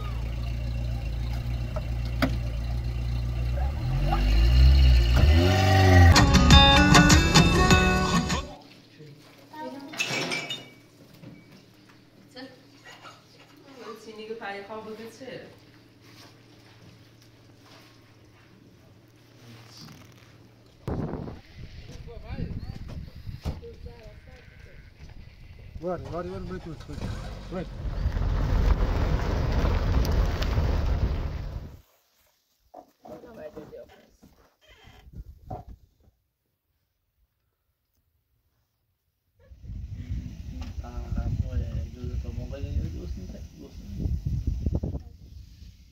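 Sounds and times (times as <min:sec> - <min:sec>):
car driving on dirt track: 0:00.0 - 0:06.2, 0:25.8 - 0:31.8.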